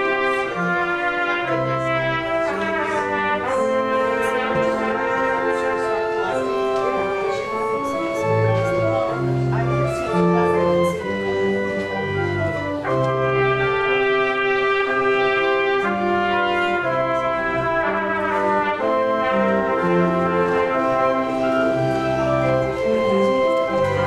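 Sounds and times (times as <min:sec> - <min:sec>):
church organ playing chords: 0:00.0 - 0:24.0.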